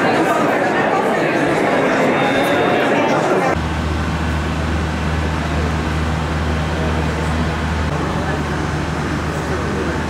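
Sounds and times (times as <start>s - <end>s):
station noise: 0.0s - 10.0s
electric train humming: 0.4s - 10.0s.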